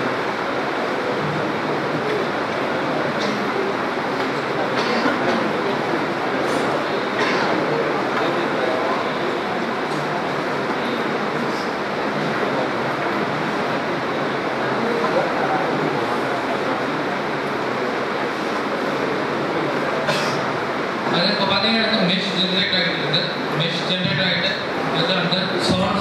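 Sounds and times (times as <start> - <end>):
murmur of voices: 0.0 - 26.0
room noise: 0.0 - 26.0.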